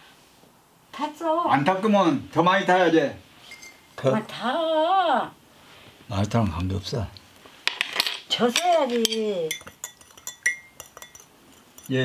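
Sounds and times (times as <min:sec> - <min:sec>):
teaspoon clinking in ceramic mug: 0:08.6 - 0:12.0.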